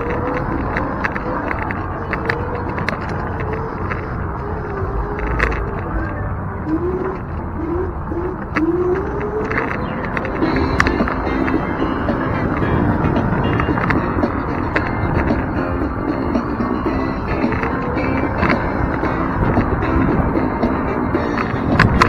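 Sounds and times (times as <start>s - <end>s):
electric scooter motor whining: 0.0s - 22.0s
sharp clicks: 0.0s - 22.0s
wind and path noise: 0.0s - 22.0s.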